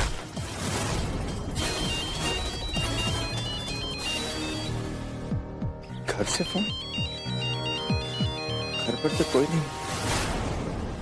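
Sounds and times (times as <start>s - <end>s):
background score music: 0.0s - 11.0s
mobile phone ringtone beeps: 1.6s - 5.0s, 6.1s - 9.7s.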